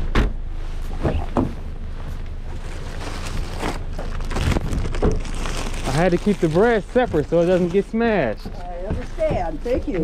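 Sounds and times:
steady low rumble: 0:00.0 - 0:10.0
plastic grocery bags rustling: 0:02.4 - 0:08.4
footsteps: 0:06.2 - 0:10.0.

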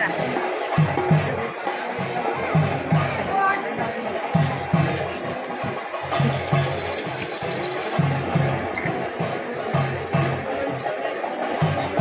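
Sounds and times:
drums beating deep strokes: 0:00.0 - 0:10.8.

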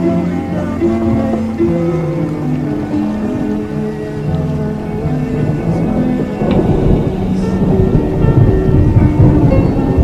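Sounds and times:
slow dream-pop music: 0:00.0 - 0:10.0
steady rain: 0:00.0 - 0:10.0
thunder rumbling: 0:00.6 - 0:10.0.

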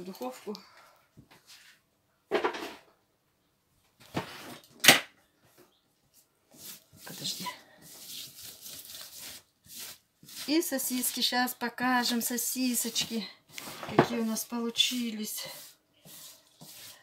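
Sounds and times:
baking tray scraping rustle: 0:12.7 - 0:17.0.

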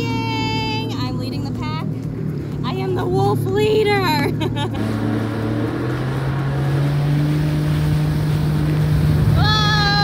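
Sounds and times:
jet ski engine running: 0:00.0 - 0:10.0.

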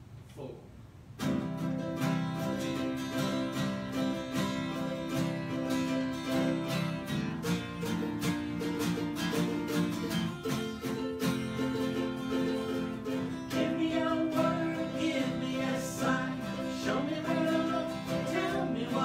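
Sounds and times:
acoustic guitar strumming: 0:01.2 - 0:19.0.

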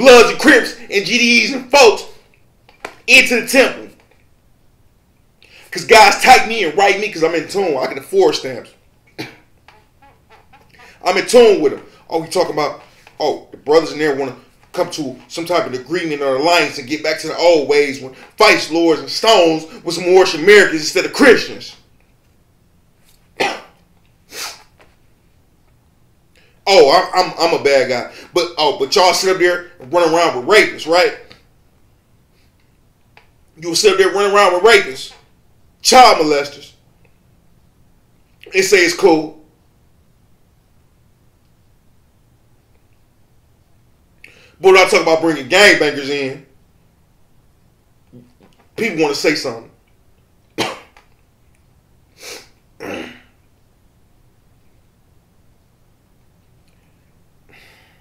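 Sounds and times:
man coughing: 0:09.1 - 0:09.5, 0:23.4 - 0:23.8, 0:50.6 - 0:51.0, 0:52.8 - 0:53.4
man breathing through nose: 0:57.5 - 0:58.0.

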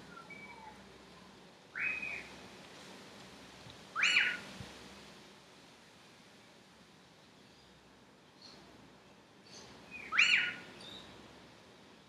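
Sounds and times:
faint bird chirps: 0:00.0 - 0:02.3, 0:09.4 - 0:11.1.

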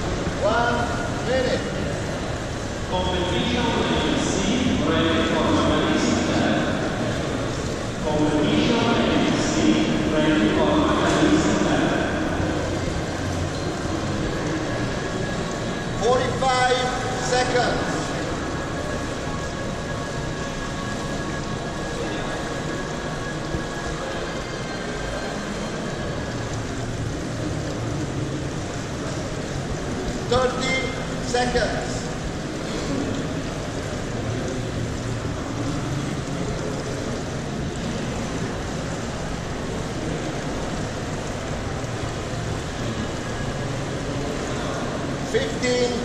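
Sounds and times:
busy indoor swimming pool noise: 0:00.0 - 0:46.0
indistinct voices: 0:00.0 - 0:46.0.

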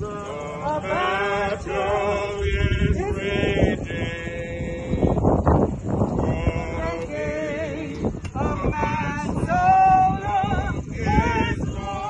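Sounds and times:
group singing a hymn: 0:00.0 - 0:12.0
wind rumbling on microphone: 0:00.0 - 0:12.0.

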